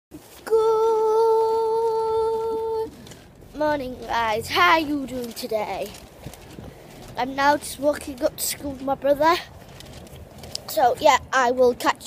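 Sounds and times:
girl singing long high note: 0.4s - 2.9s.

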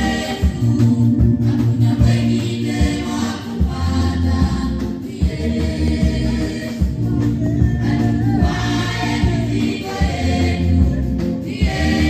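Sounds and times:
bass accompaniment: 0.0s - 12.0s
choir singing gospel song: 0.0s - 12.0s.

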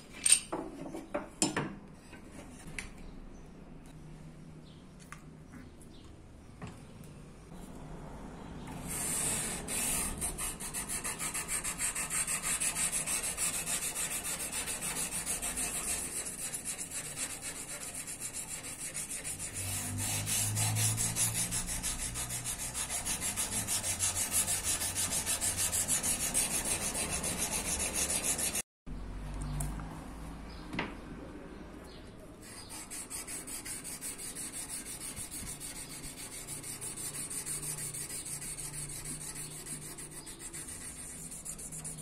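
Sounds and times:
sandpaper rubbing on metal blade: 8.9s - 28.6s, 32.4s - 42.0s.

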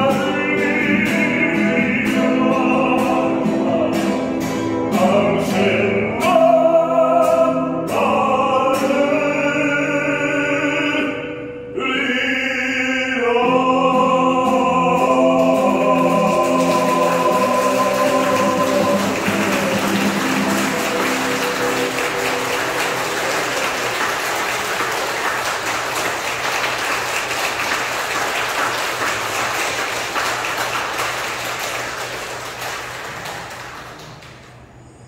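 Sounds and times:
person singing with acoustic guitar: 0.0s - 22.9s
congregation applauding: 15.3s - 34.7s.

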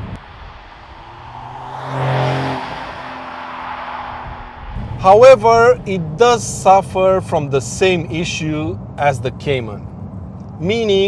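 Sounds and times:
car passing by: 0.0s - 5.0s.

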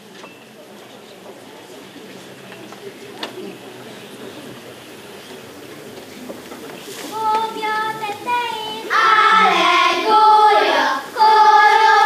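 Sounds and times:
girls singing: 7.1s - 12.0s.

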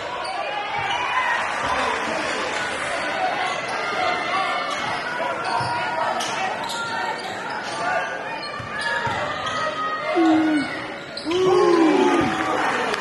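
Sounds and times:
sneaker squeaks: 4.7s - 11.5s
crowd voices echoing: 10.0s - 13.0s.

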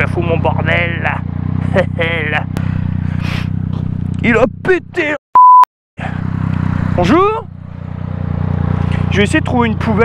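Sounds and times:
motorcycle engine running: 0.0s - 5.2s, 6.0s - 10.0s.

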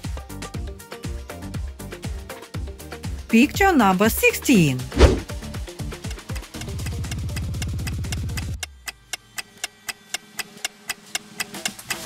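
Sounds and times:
clock-like ticking: 6.1s - 12.0s.

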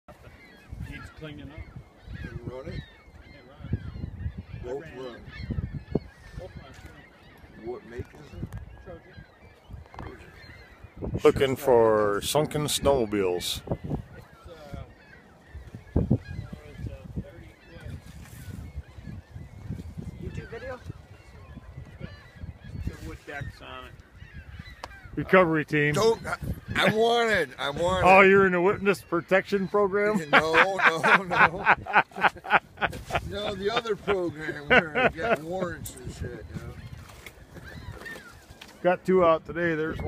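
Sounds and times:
wind rumble on microphone: 0.1s - 28.6s, 31.2s - 40.0s
geese honking: 12.4s - 37.0s.

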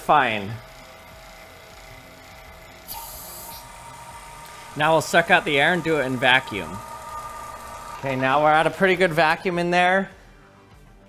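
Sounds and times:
faint steady hum: 0.0s - 9.8s
air hissing through valve: 2.9s - 9.6s.

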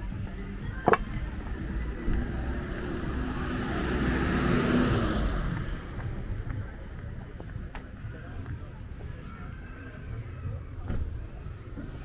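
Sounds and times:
car passing: 0.6s - 7.4s.

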